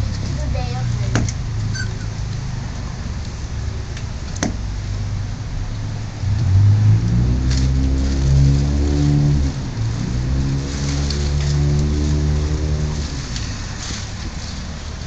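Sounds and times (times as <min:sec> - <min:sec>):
loud low drone: 0:04.6 - 0:13.8.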